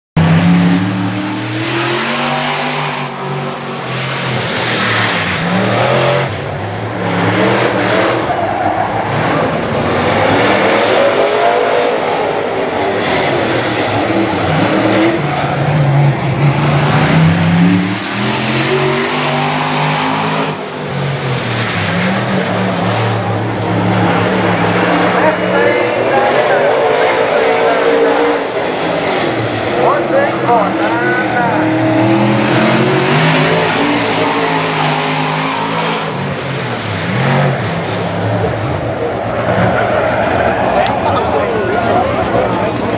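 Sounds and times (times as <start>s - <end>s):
race car engine revving: 0.2s - 42.9s.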